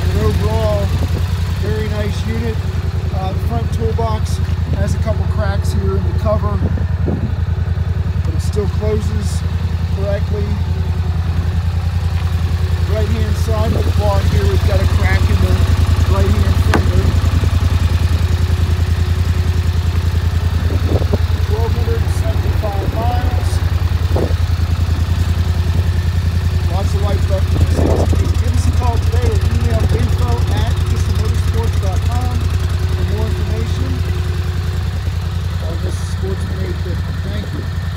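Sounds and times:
atv engine idling: 0.0 - 37.9.

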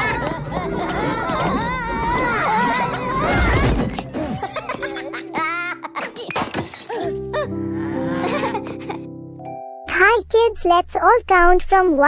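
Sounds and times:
high wavering cartoon cry: 0.0 - 3.8
crashing and clattering effects: 2.4 - 5.0.

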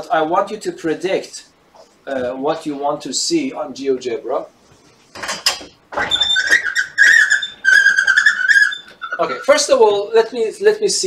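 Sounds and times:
whiteboard panel squealing on runners: 5.9 - 10.1.

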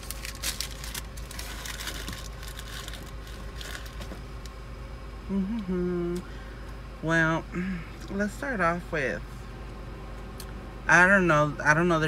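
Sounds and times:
paper receipts crinkling: 0.0 - 4.2
car hum: 0.0 - 12.0.

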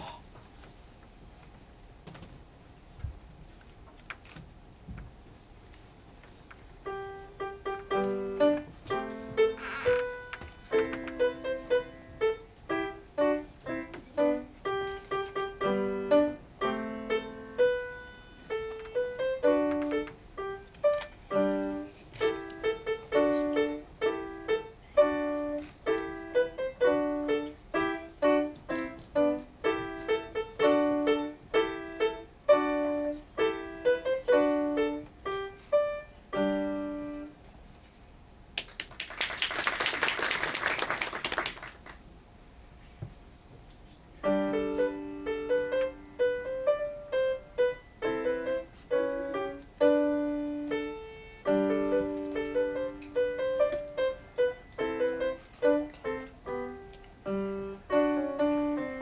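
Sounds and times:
grand piano playing: 6.9 - 37.2, 44.2 - 59.0.

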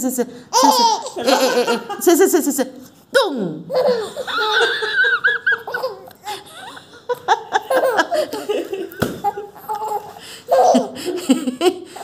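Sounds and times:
person laughing: 0.7 - 2.2, 10.5 - 12.0.

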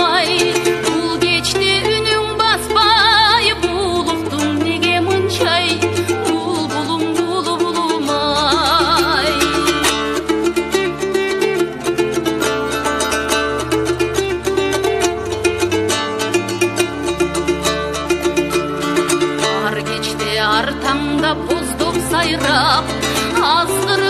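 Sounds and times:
plucked string instruments: 0.0 - 24.0.

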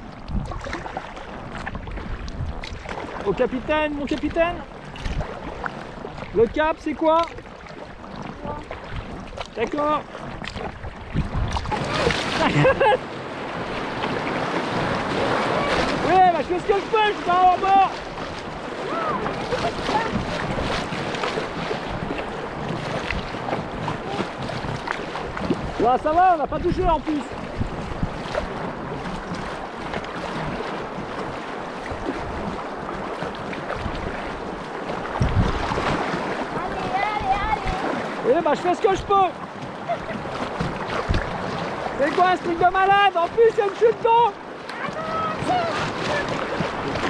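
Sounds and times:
river water splashing against hull: 0.0 - 47.0
wind buffeting microphone: 0.0 - 47.0
low thump: 35.2 - 35.7.

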